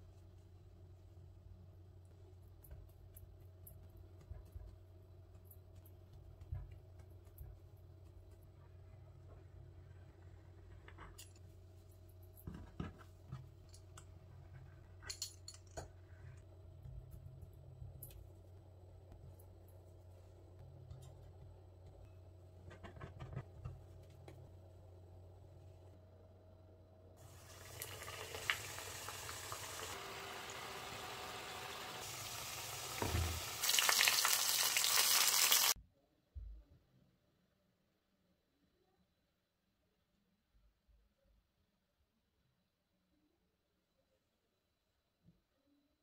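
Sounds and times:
low steady hum: 0:00.0 - 0:33.6
food sizzling in hot oil: 0:27.2 - 0:35.8.

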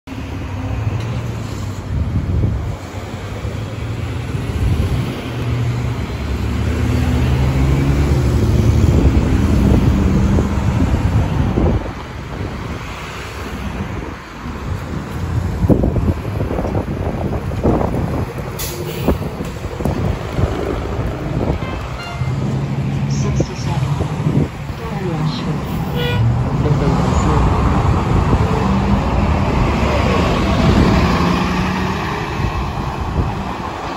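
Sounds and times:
road traffic engine drone: 0:00.1 - 0:33.9.

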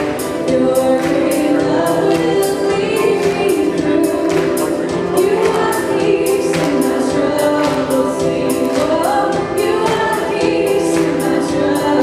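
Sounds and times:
praise band playing worship song: 0:00.0 - 0:12.0
women singing: 0:00.0 - 0:12.0.

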